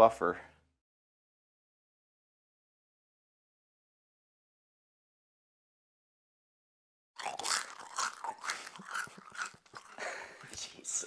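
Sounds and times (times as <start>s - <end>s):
crunchy chewing: 7.2s - 10.6s.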